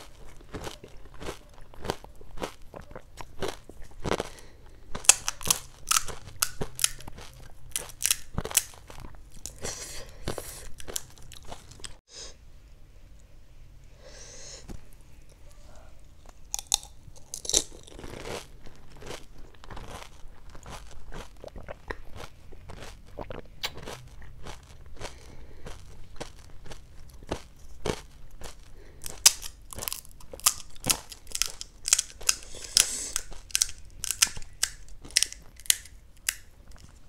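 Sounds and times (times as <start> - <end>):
crunching and chewing food: 0.0 - 12.0, 15.1 - 37.0.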